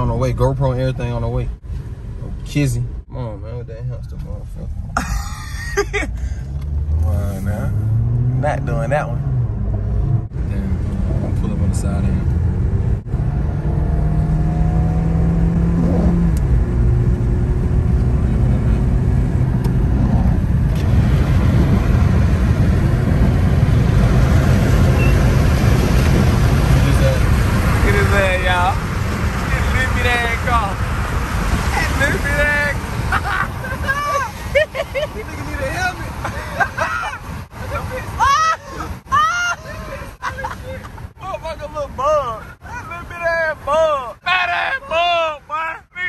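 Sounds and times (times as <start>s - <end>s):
car engine and tyre noise: 0.0s - 46.0s.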